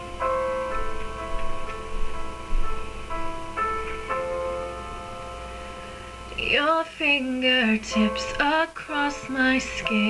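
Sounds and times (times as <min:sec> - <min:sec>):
piano playing slow chords: 0:00.0 - 0:10.0.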